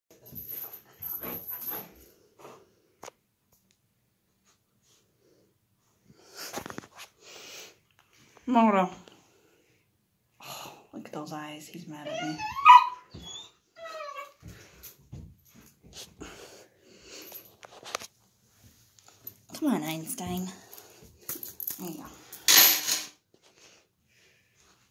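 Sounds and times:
puppy whining: 0:12.0 - 0:14.5.

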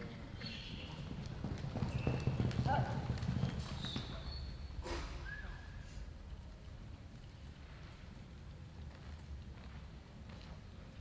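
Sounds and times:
horse hoofbeats galloping on dirt: 0:00.4 - 0:04.6.

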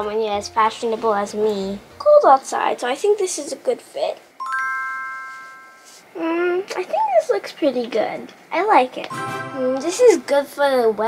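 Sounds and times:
bright bell-like chime: 0:04.4 - 0:06.0, 0:09.1 - 0:09.8.

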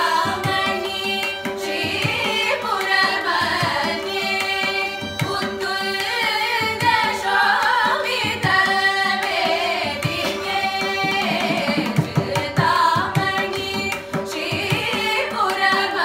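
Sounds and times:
mridangam drum strokes: 0:00.0 - 0:16.0
violin: 0:00.0 - 0:16.0
women singing in unison: 0:00.0 - 0:16.0.

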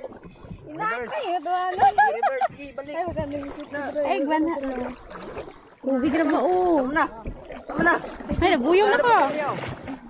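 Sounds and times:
paddle in water: 0:00.0 - 0:10.0.

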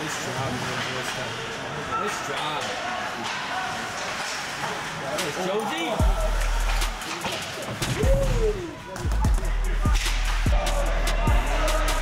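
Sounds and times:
voice: 0:00.0 - 0:06.0
background music: 0:06.0 - 0:12.0.

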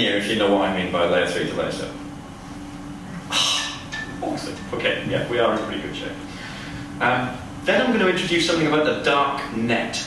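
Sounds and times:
sound system hum: 0:00.0 - 0:10.0.

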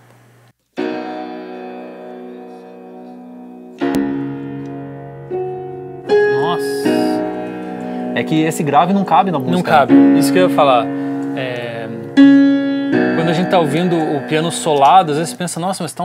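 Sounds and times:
piano chords: 0:00.7 - 0:16.0.

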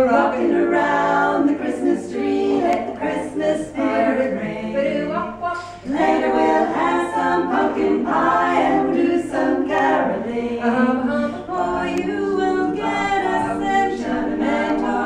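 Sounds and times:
women singing in close harmony: 0:00.0 - 0:15.0.

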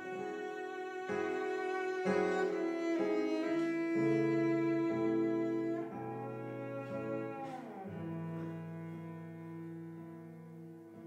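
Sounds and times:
acoustic guitar accompaniment: 0:00.0 - 0:11.0
cello bowing melody: 0:00.0 - 0:11.0.

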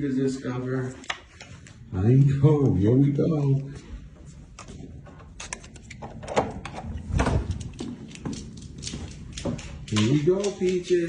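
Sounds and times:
dog claws clicking on wood floor: 0:05.4 - 0:11.0.

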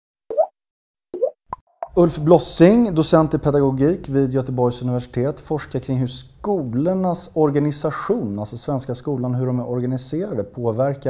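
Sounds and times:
synthetic pops: 0:00.3 - 0:00.5, 0:01.2 - 0:02.0.

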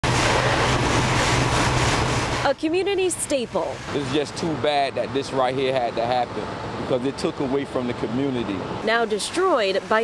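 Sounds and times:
fire hose water spraying: 0:00.0 - 0:10.0
low engine hum: 0:00.0 - 0:10.0.

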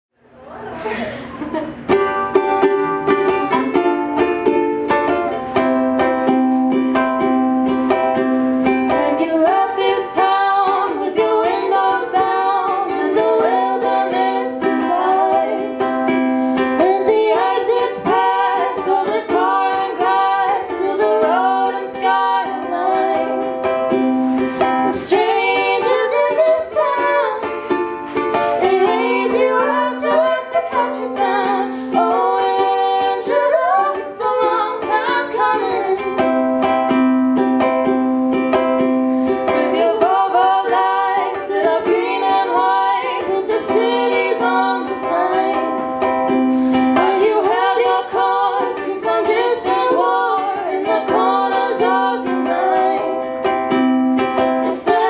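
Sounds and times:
strummed ukulele: 0:00.5 - 0:55.0
women singing together: 0:08.6 - 0:36.4, 0:39.3 - 0:53.8, 0:54.4 - 0:55.0.

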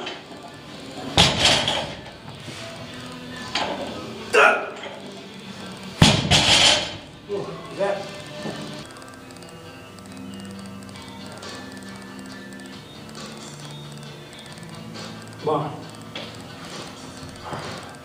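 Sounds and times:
background music: 0:00.0 - 0:18.0
barbell dropped on platform: 0:01.2 - 0:02.0, 0:06.0 - 0:07.1.

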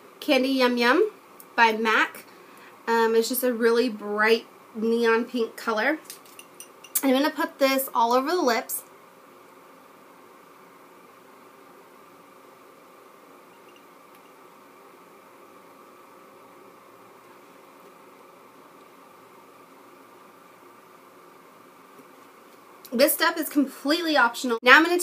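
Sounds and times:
faint room tone hiss: 0:00.0 - 0:25.0.

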